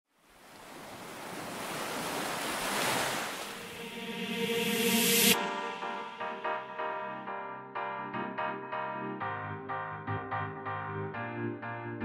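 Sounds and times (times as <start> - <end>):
wind: 0.1 - 5.4
ocean surf: 0.2 - 7.3.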